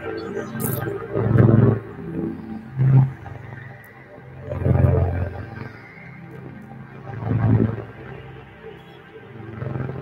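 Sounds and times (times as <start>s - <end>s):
low rough electronic drone: 0.0s - 10.0s.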